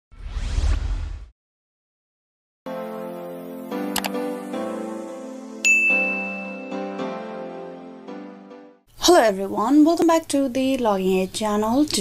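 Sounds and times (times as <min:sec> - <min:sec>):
swoosh sound effect: 0:00.1 - 0:01.3.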